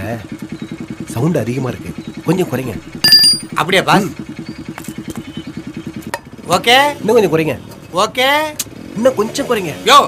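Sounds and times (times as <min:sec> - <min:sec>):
motorcycle engine idling: 0:00.0 - 0:08.0.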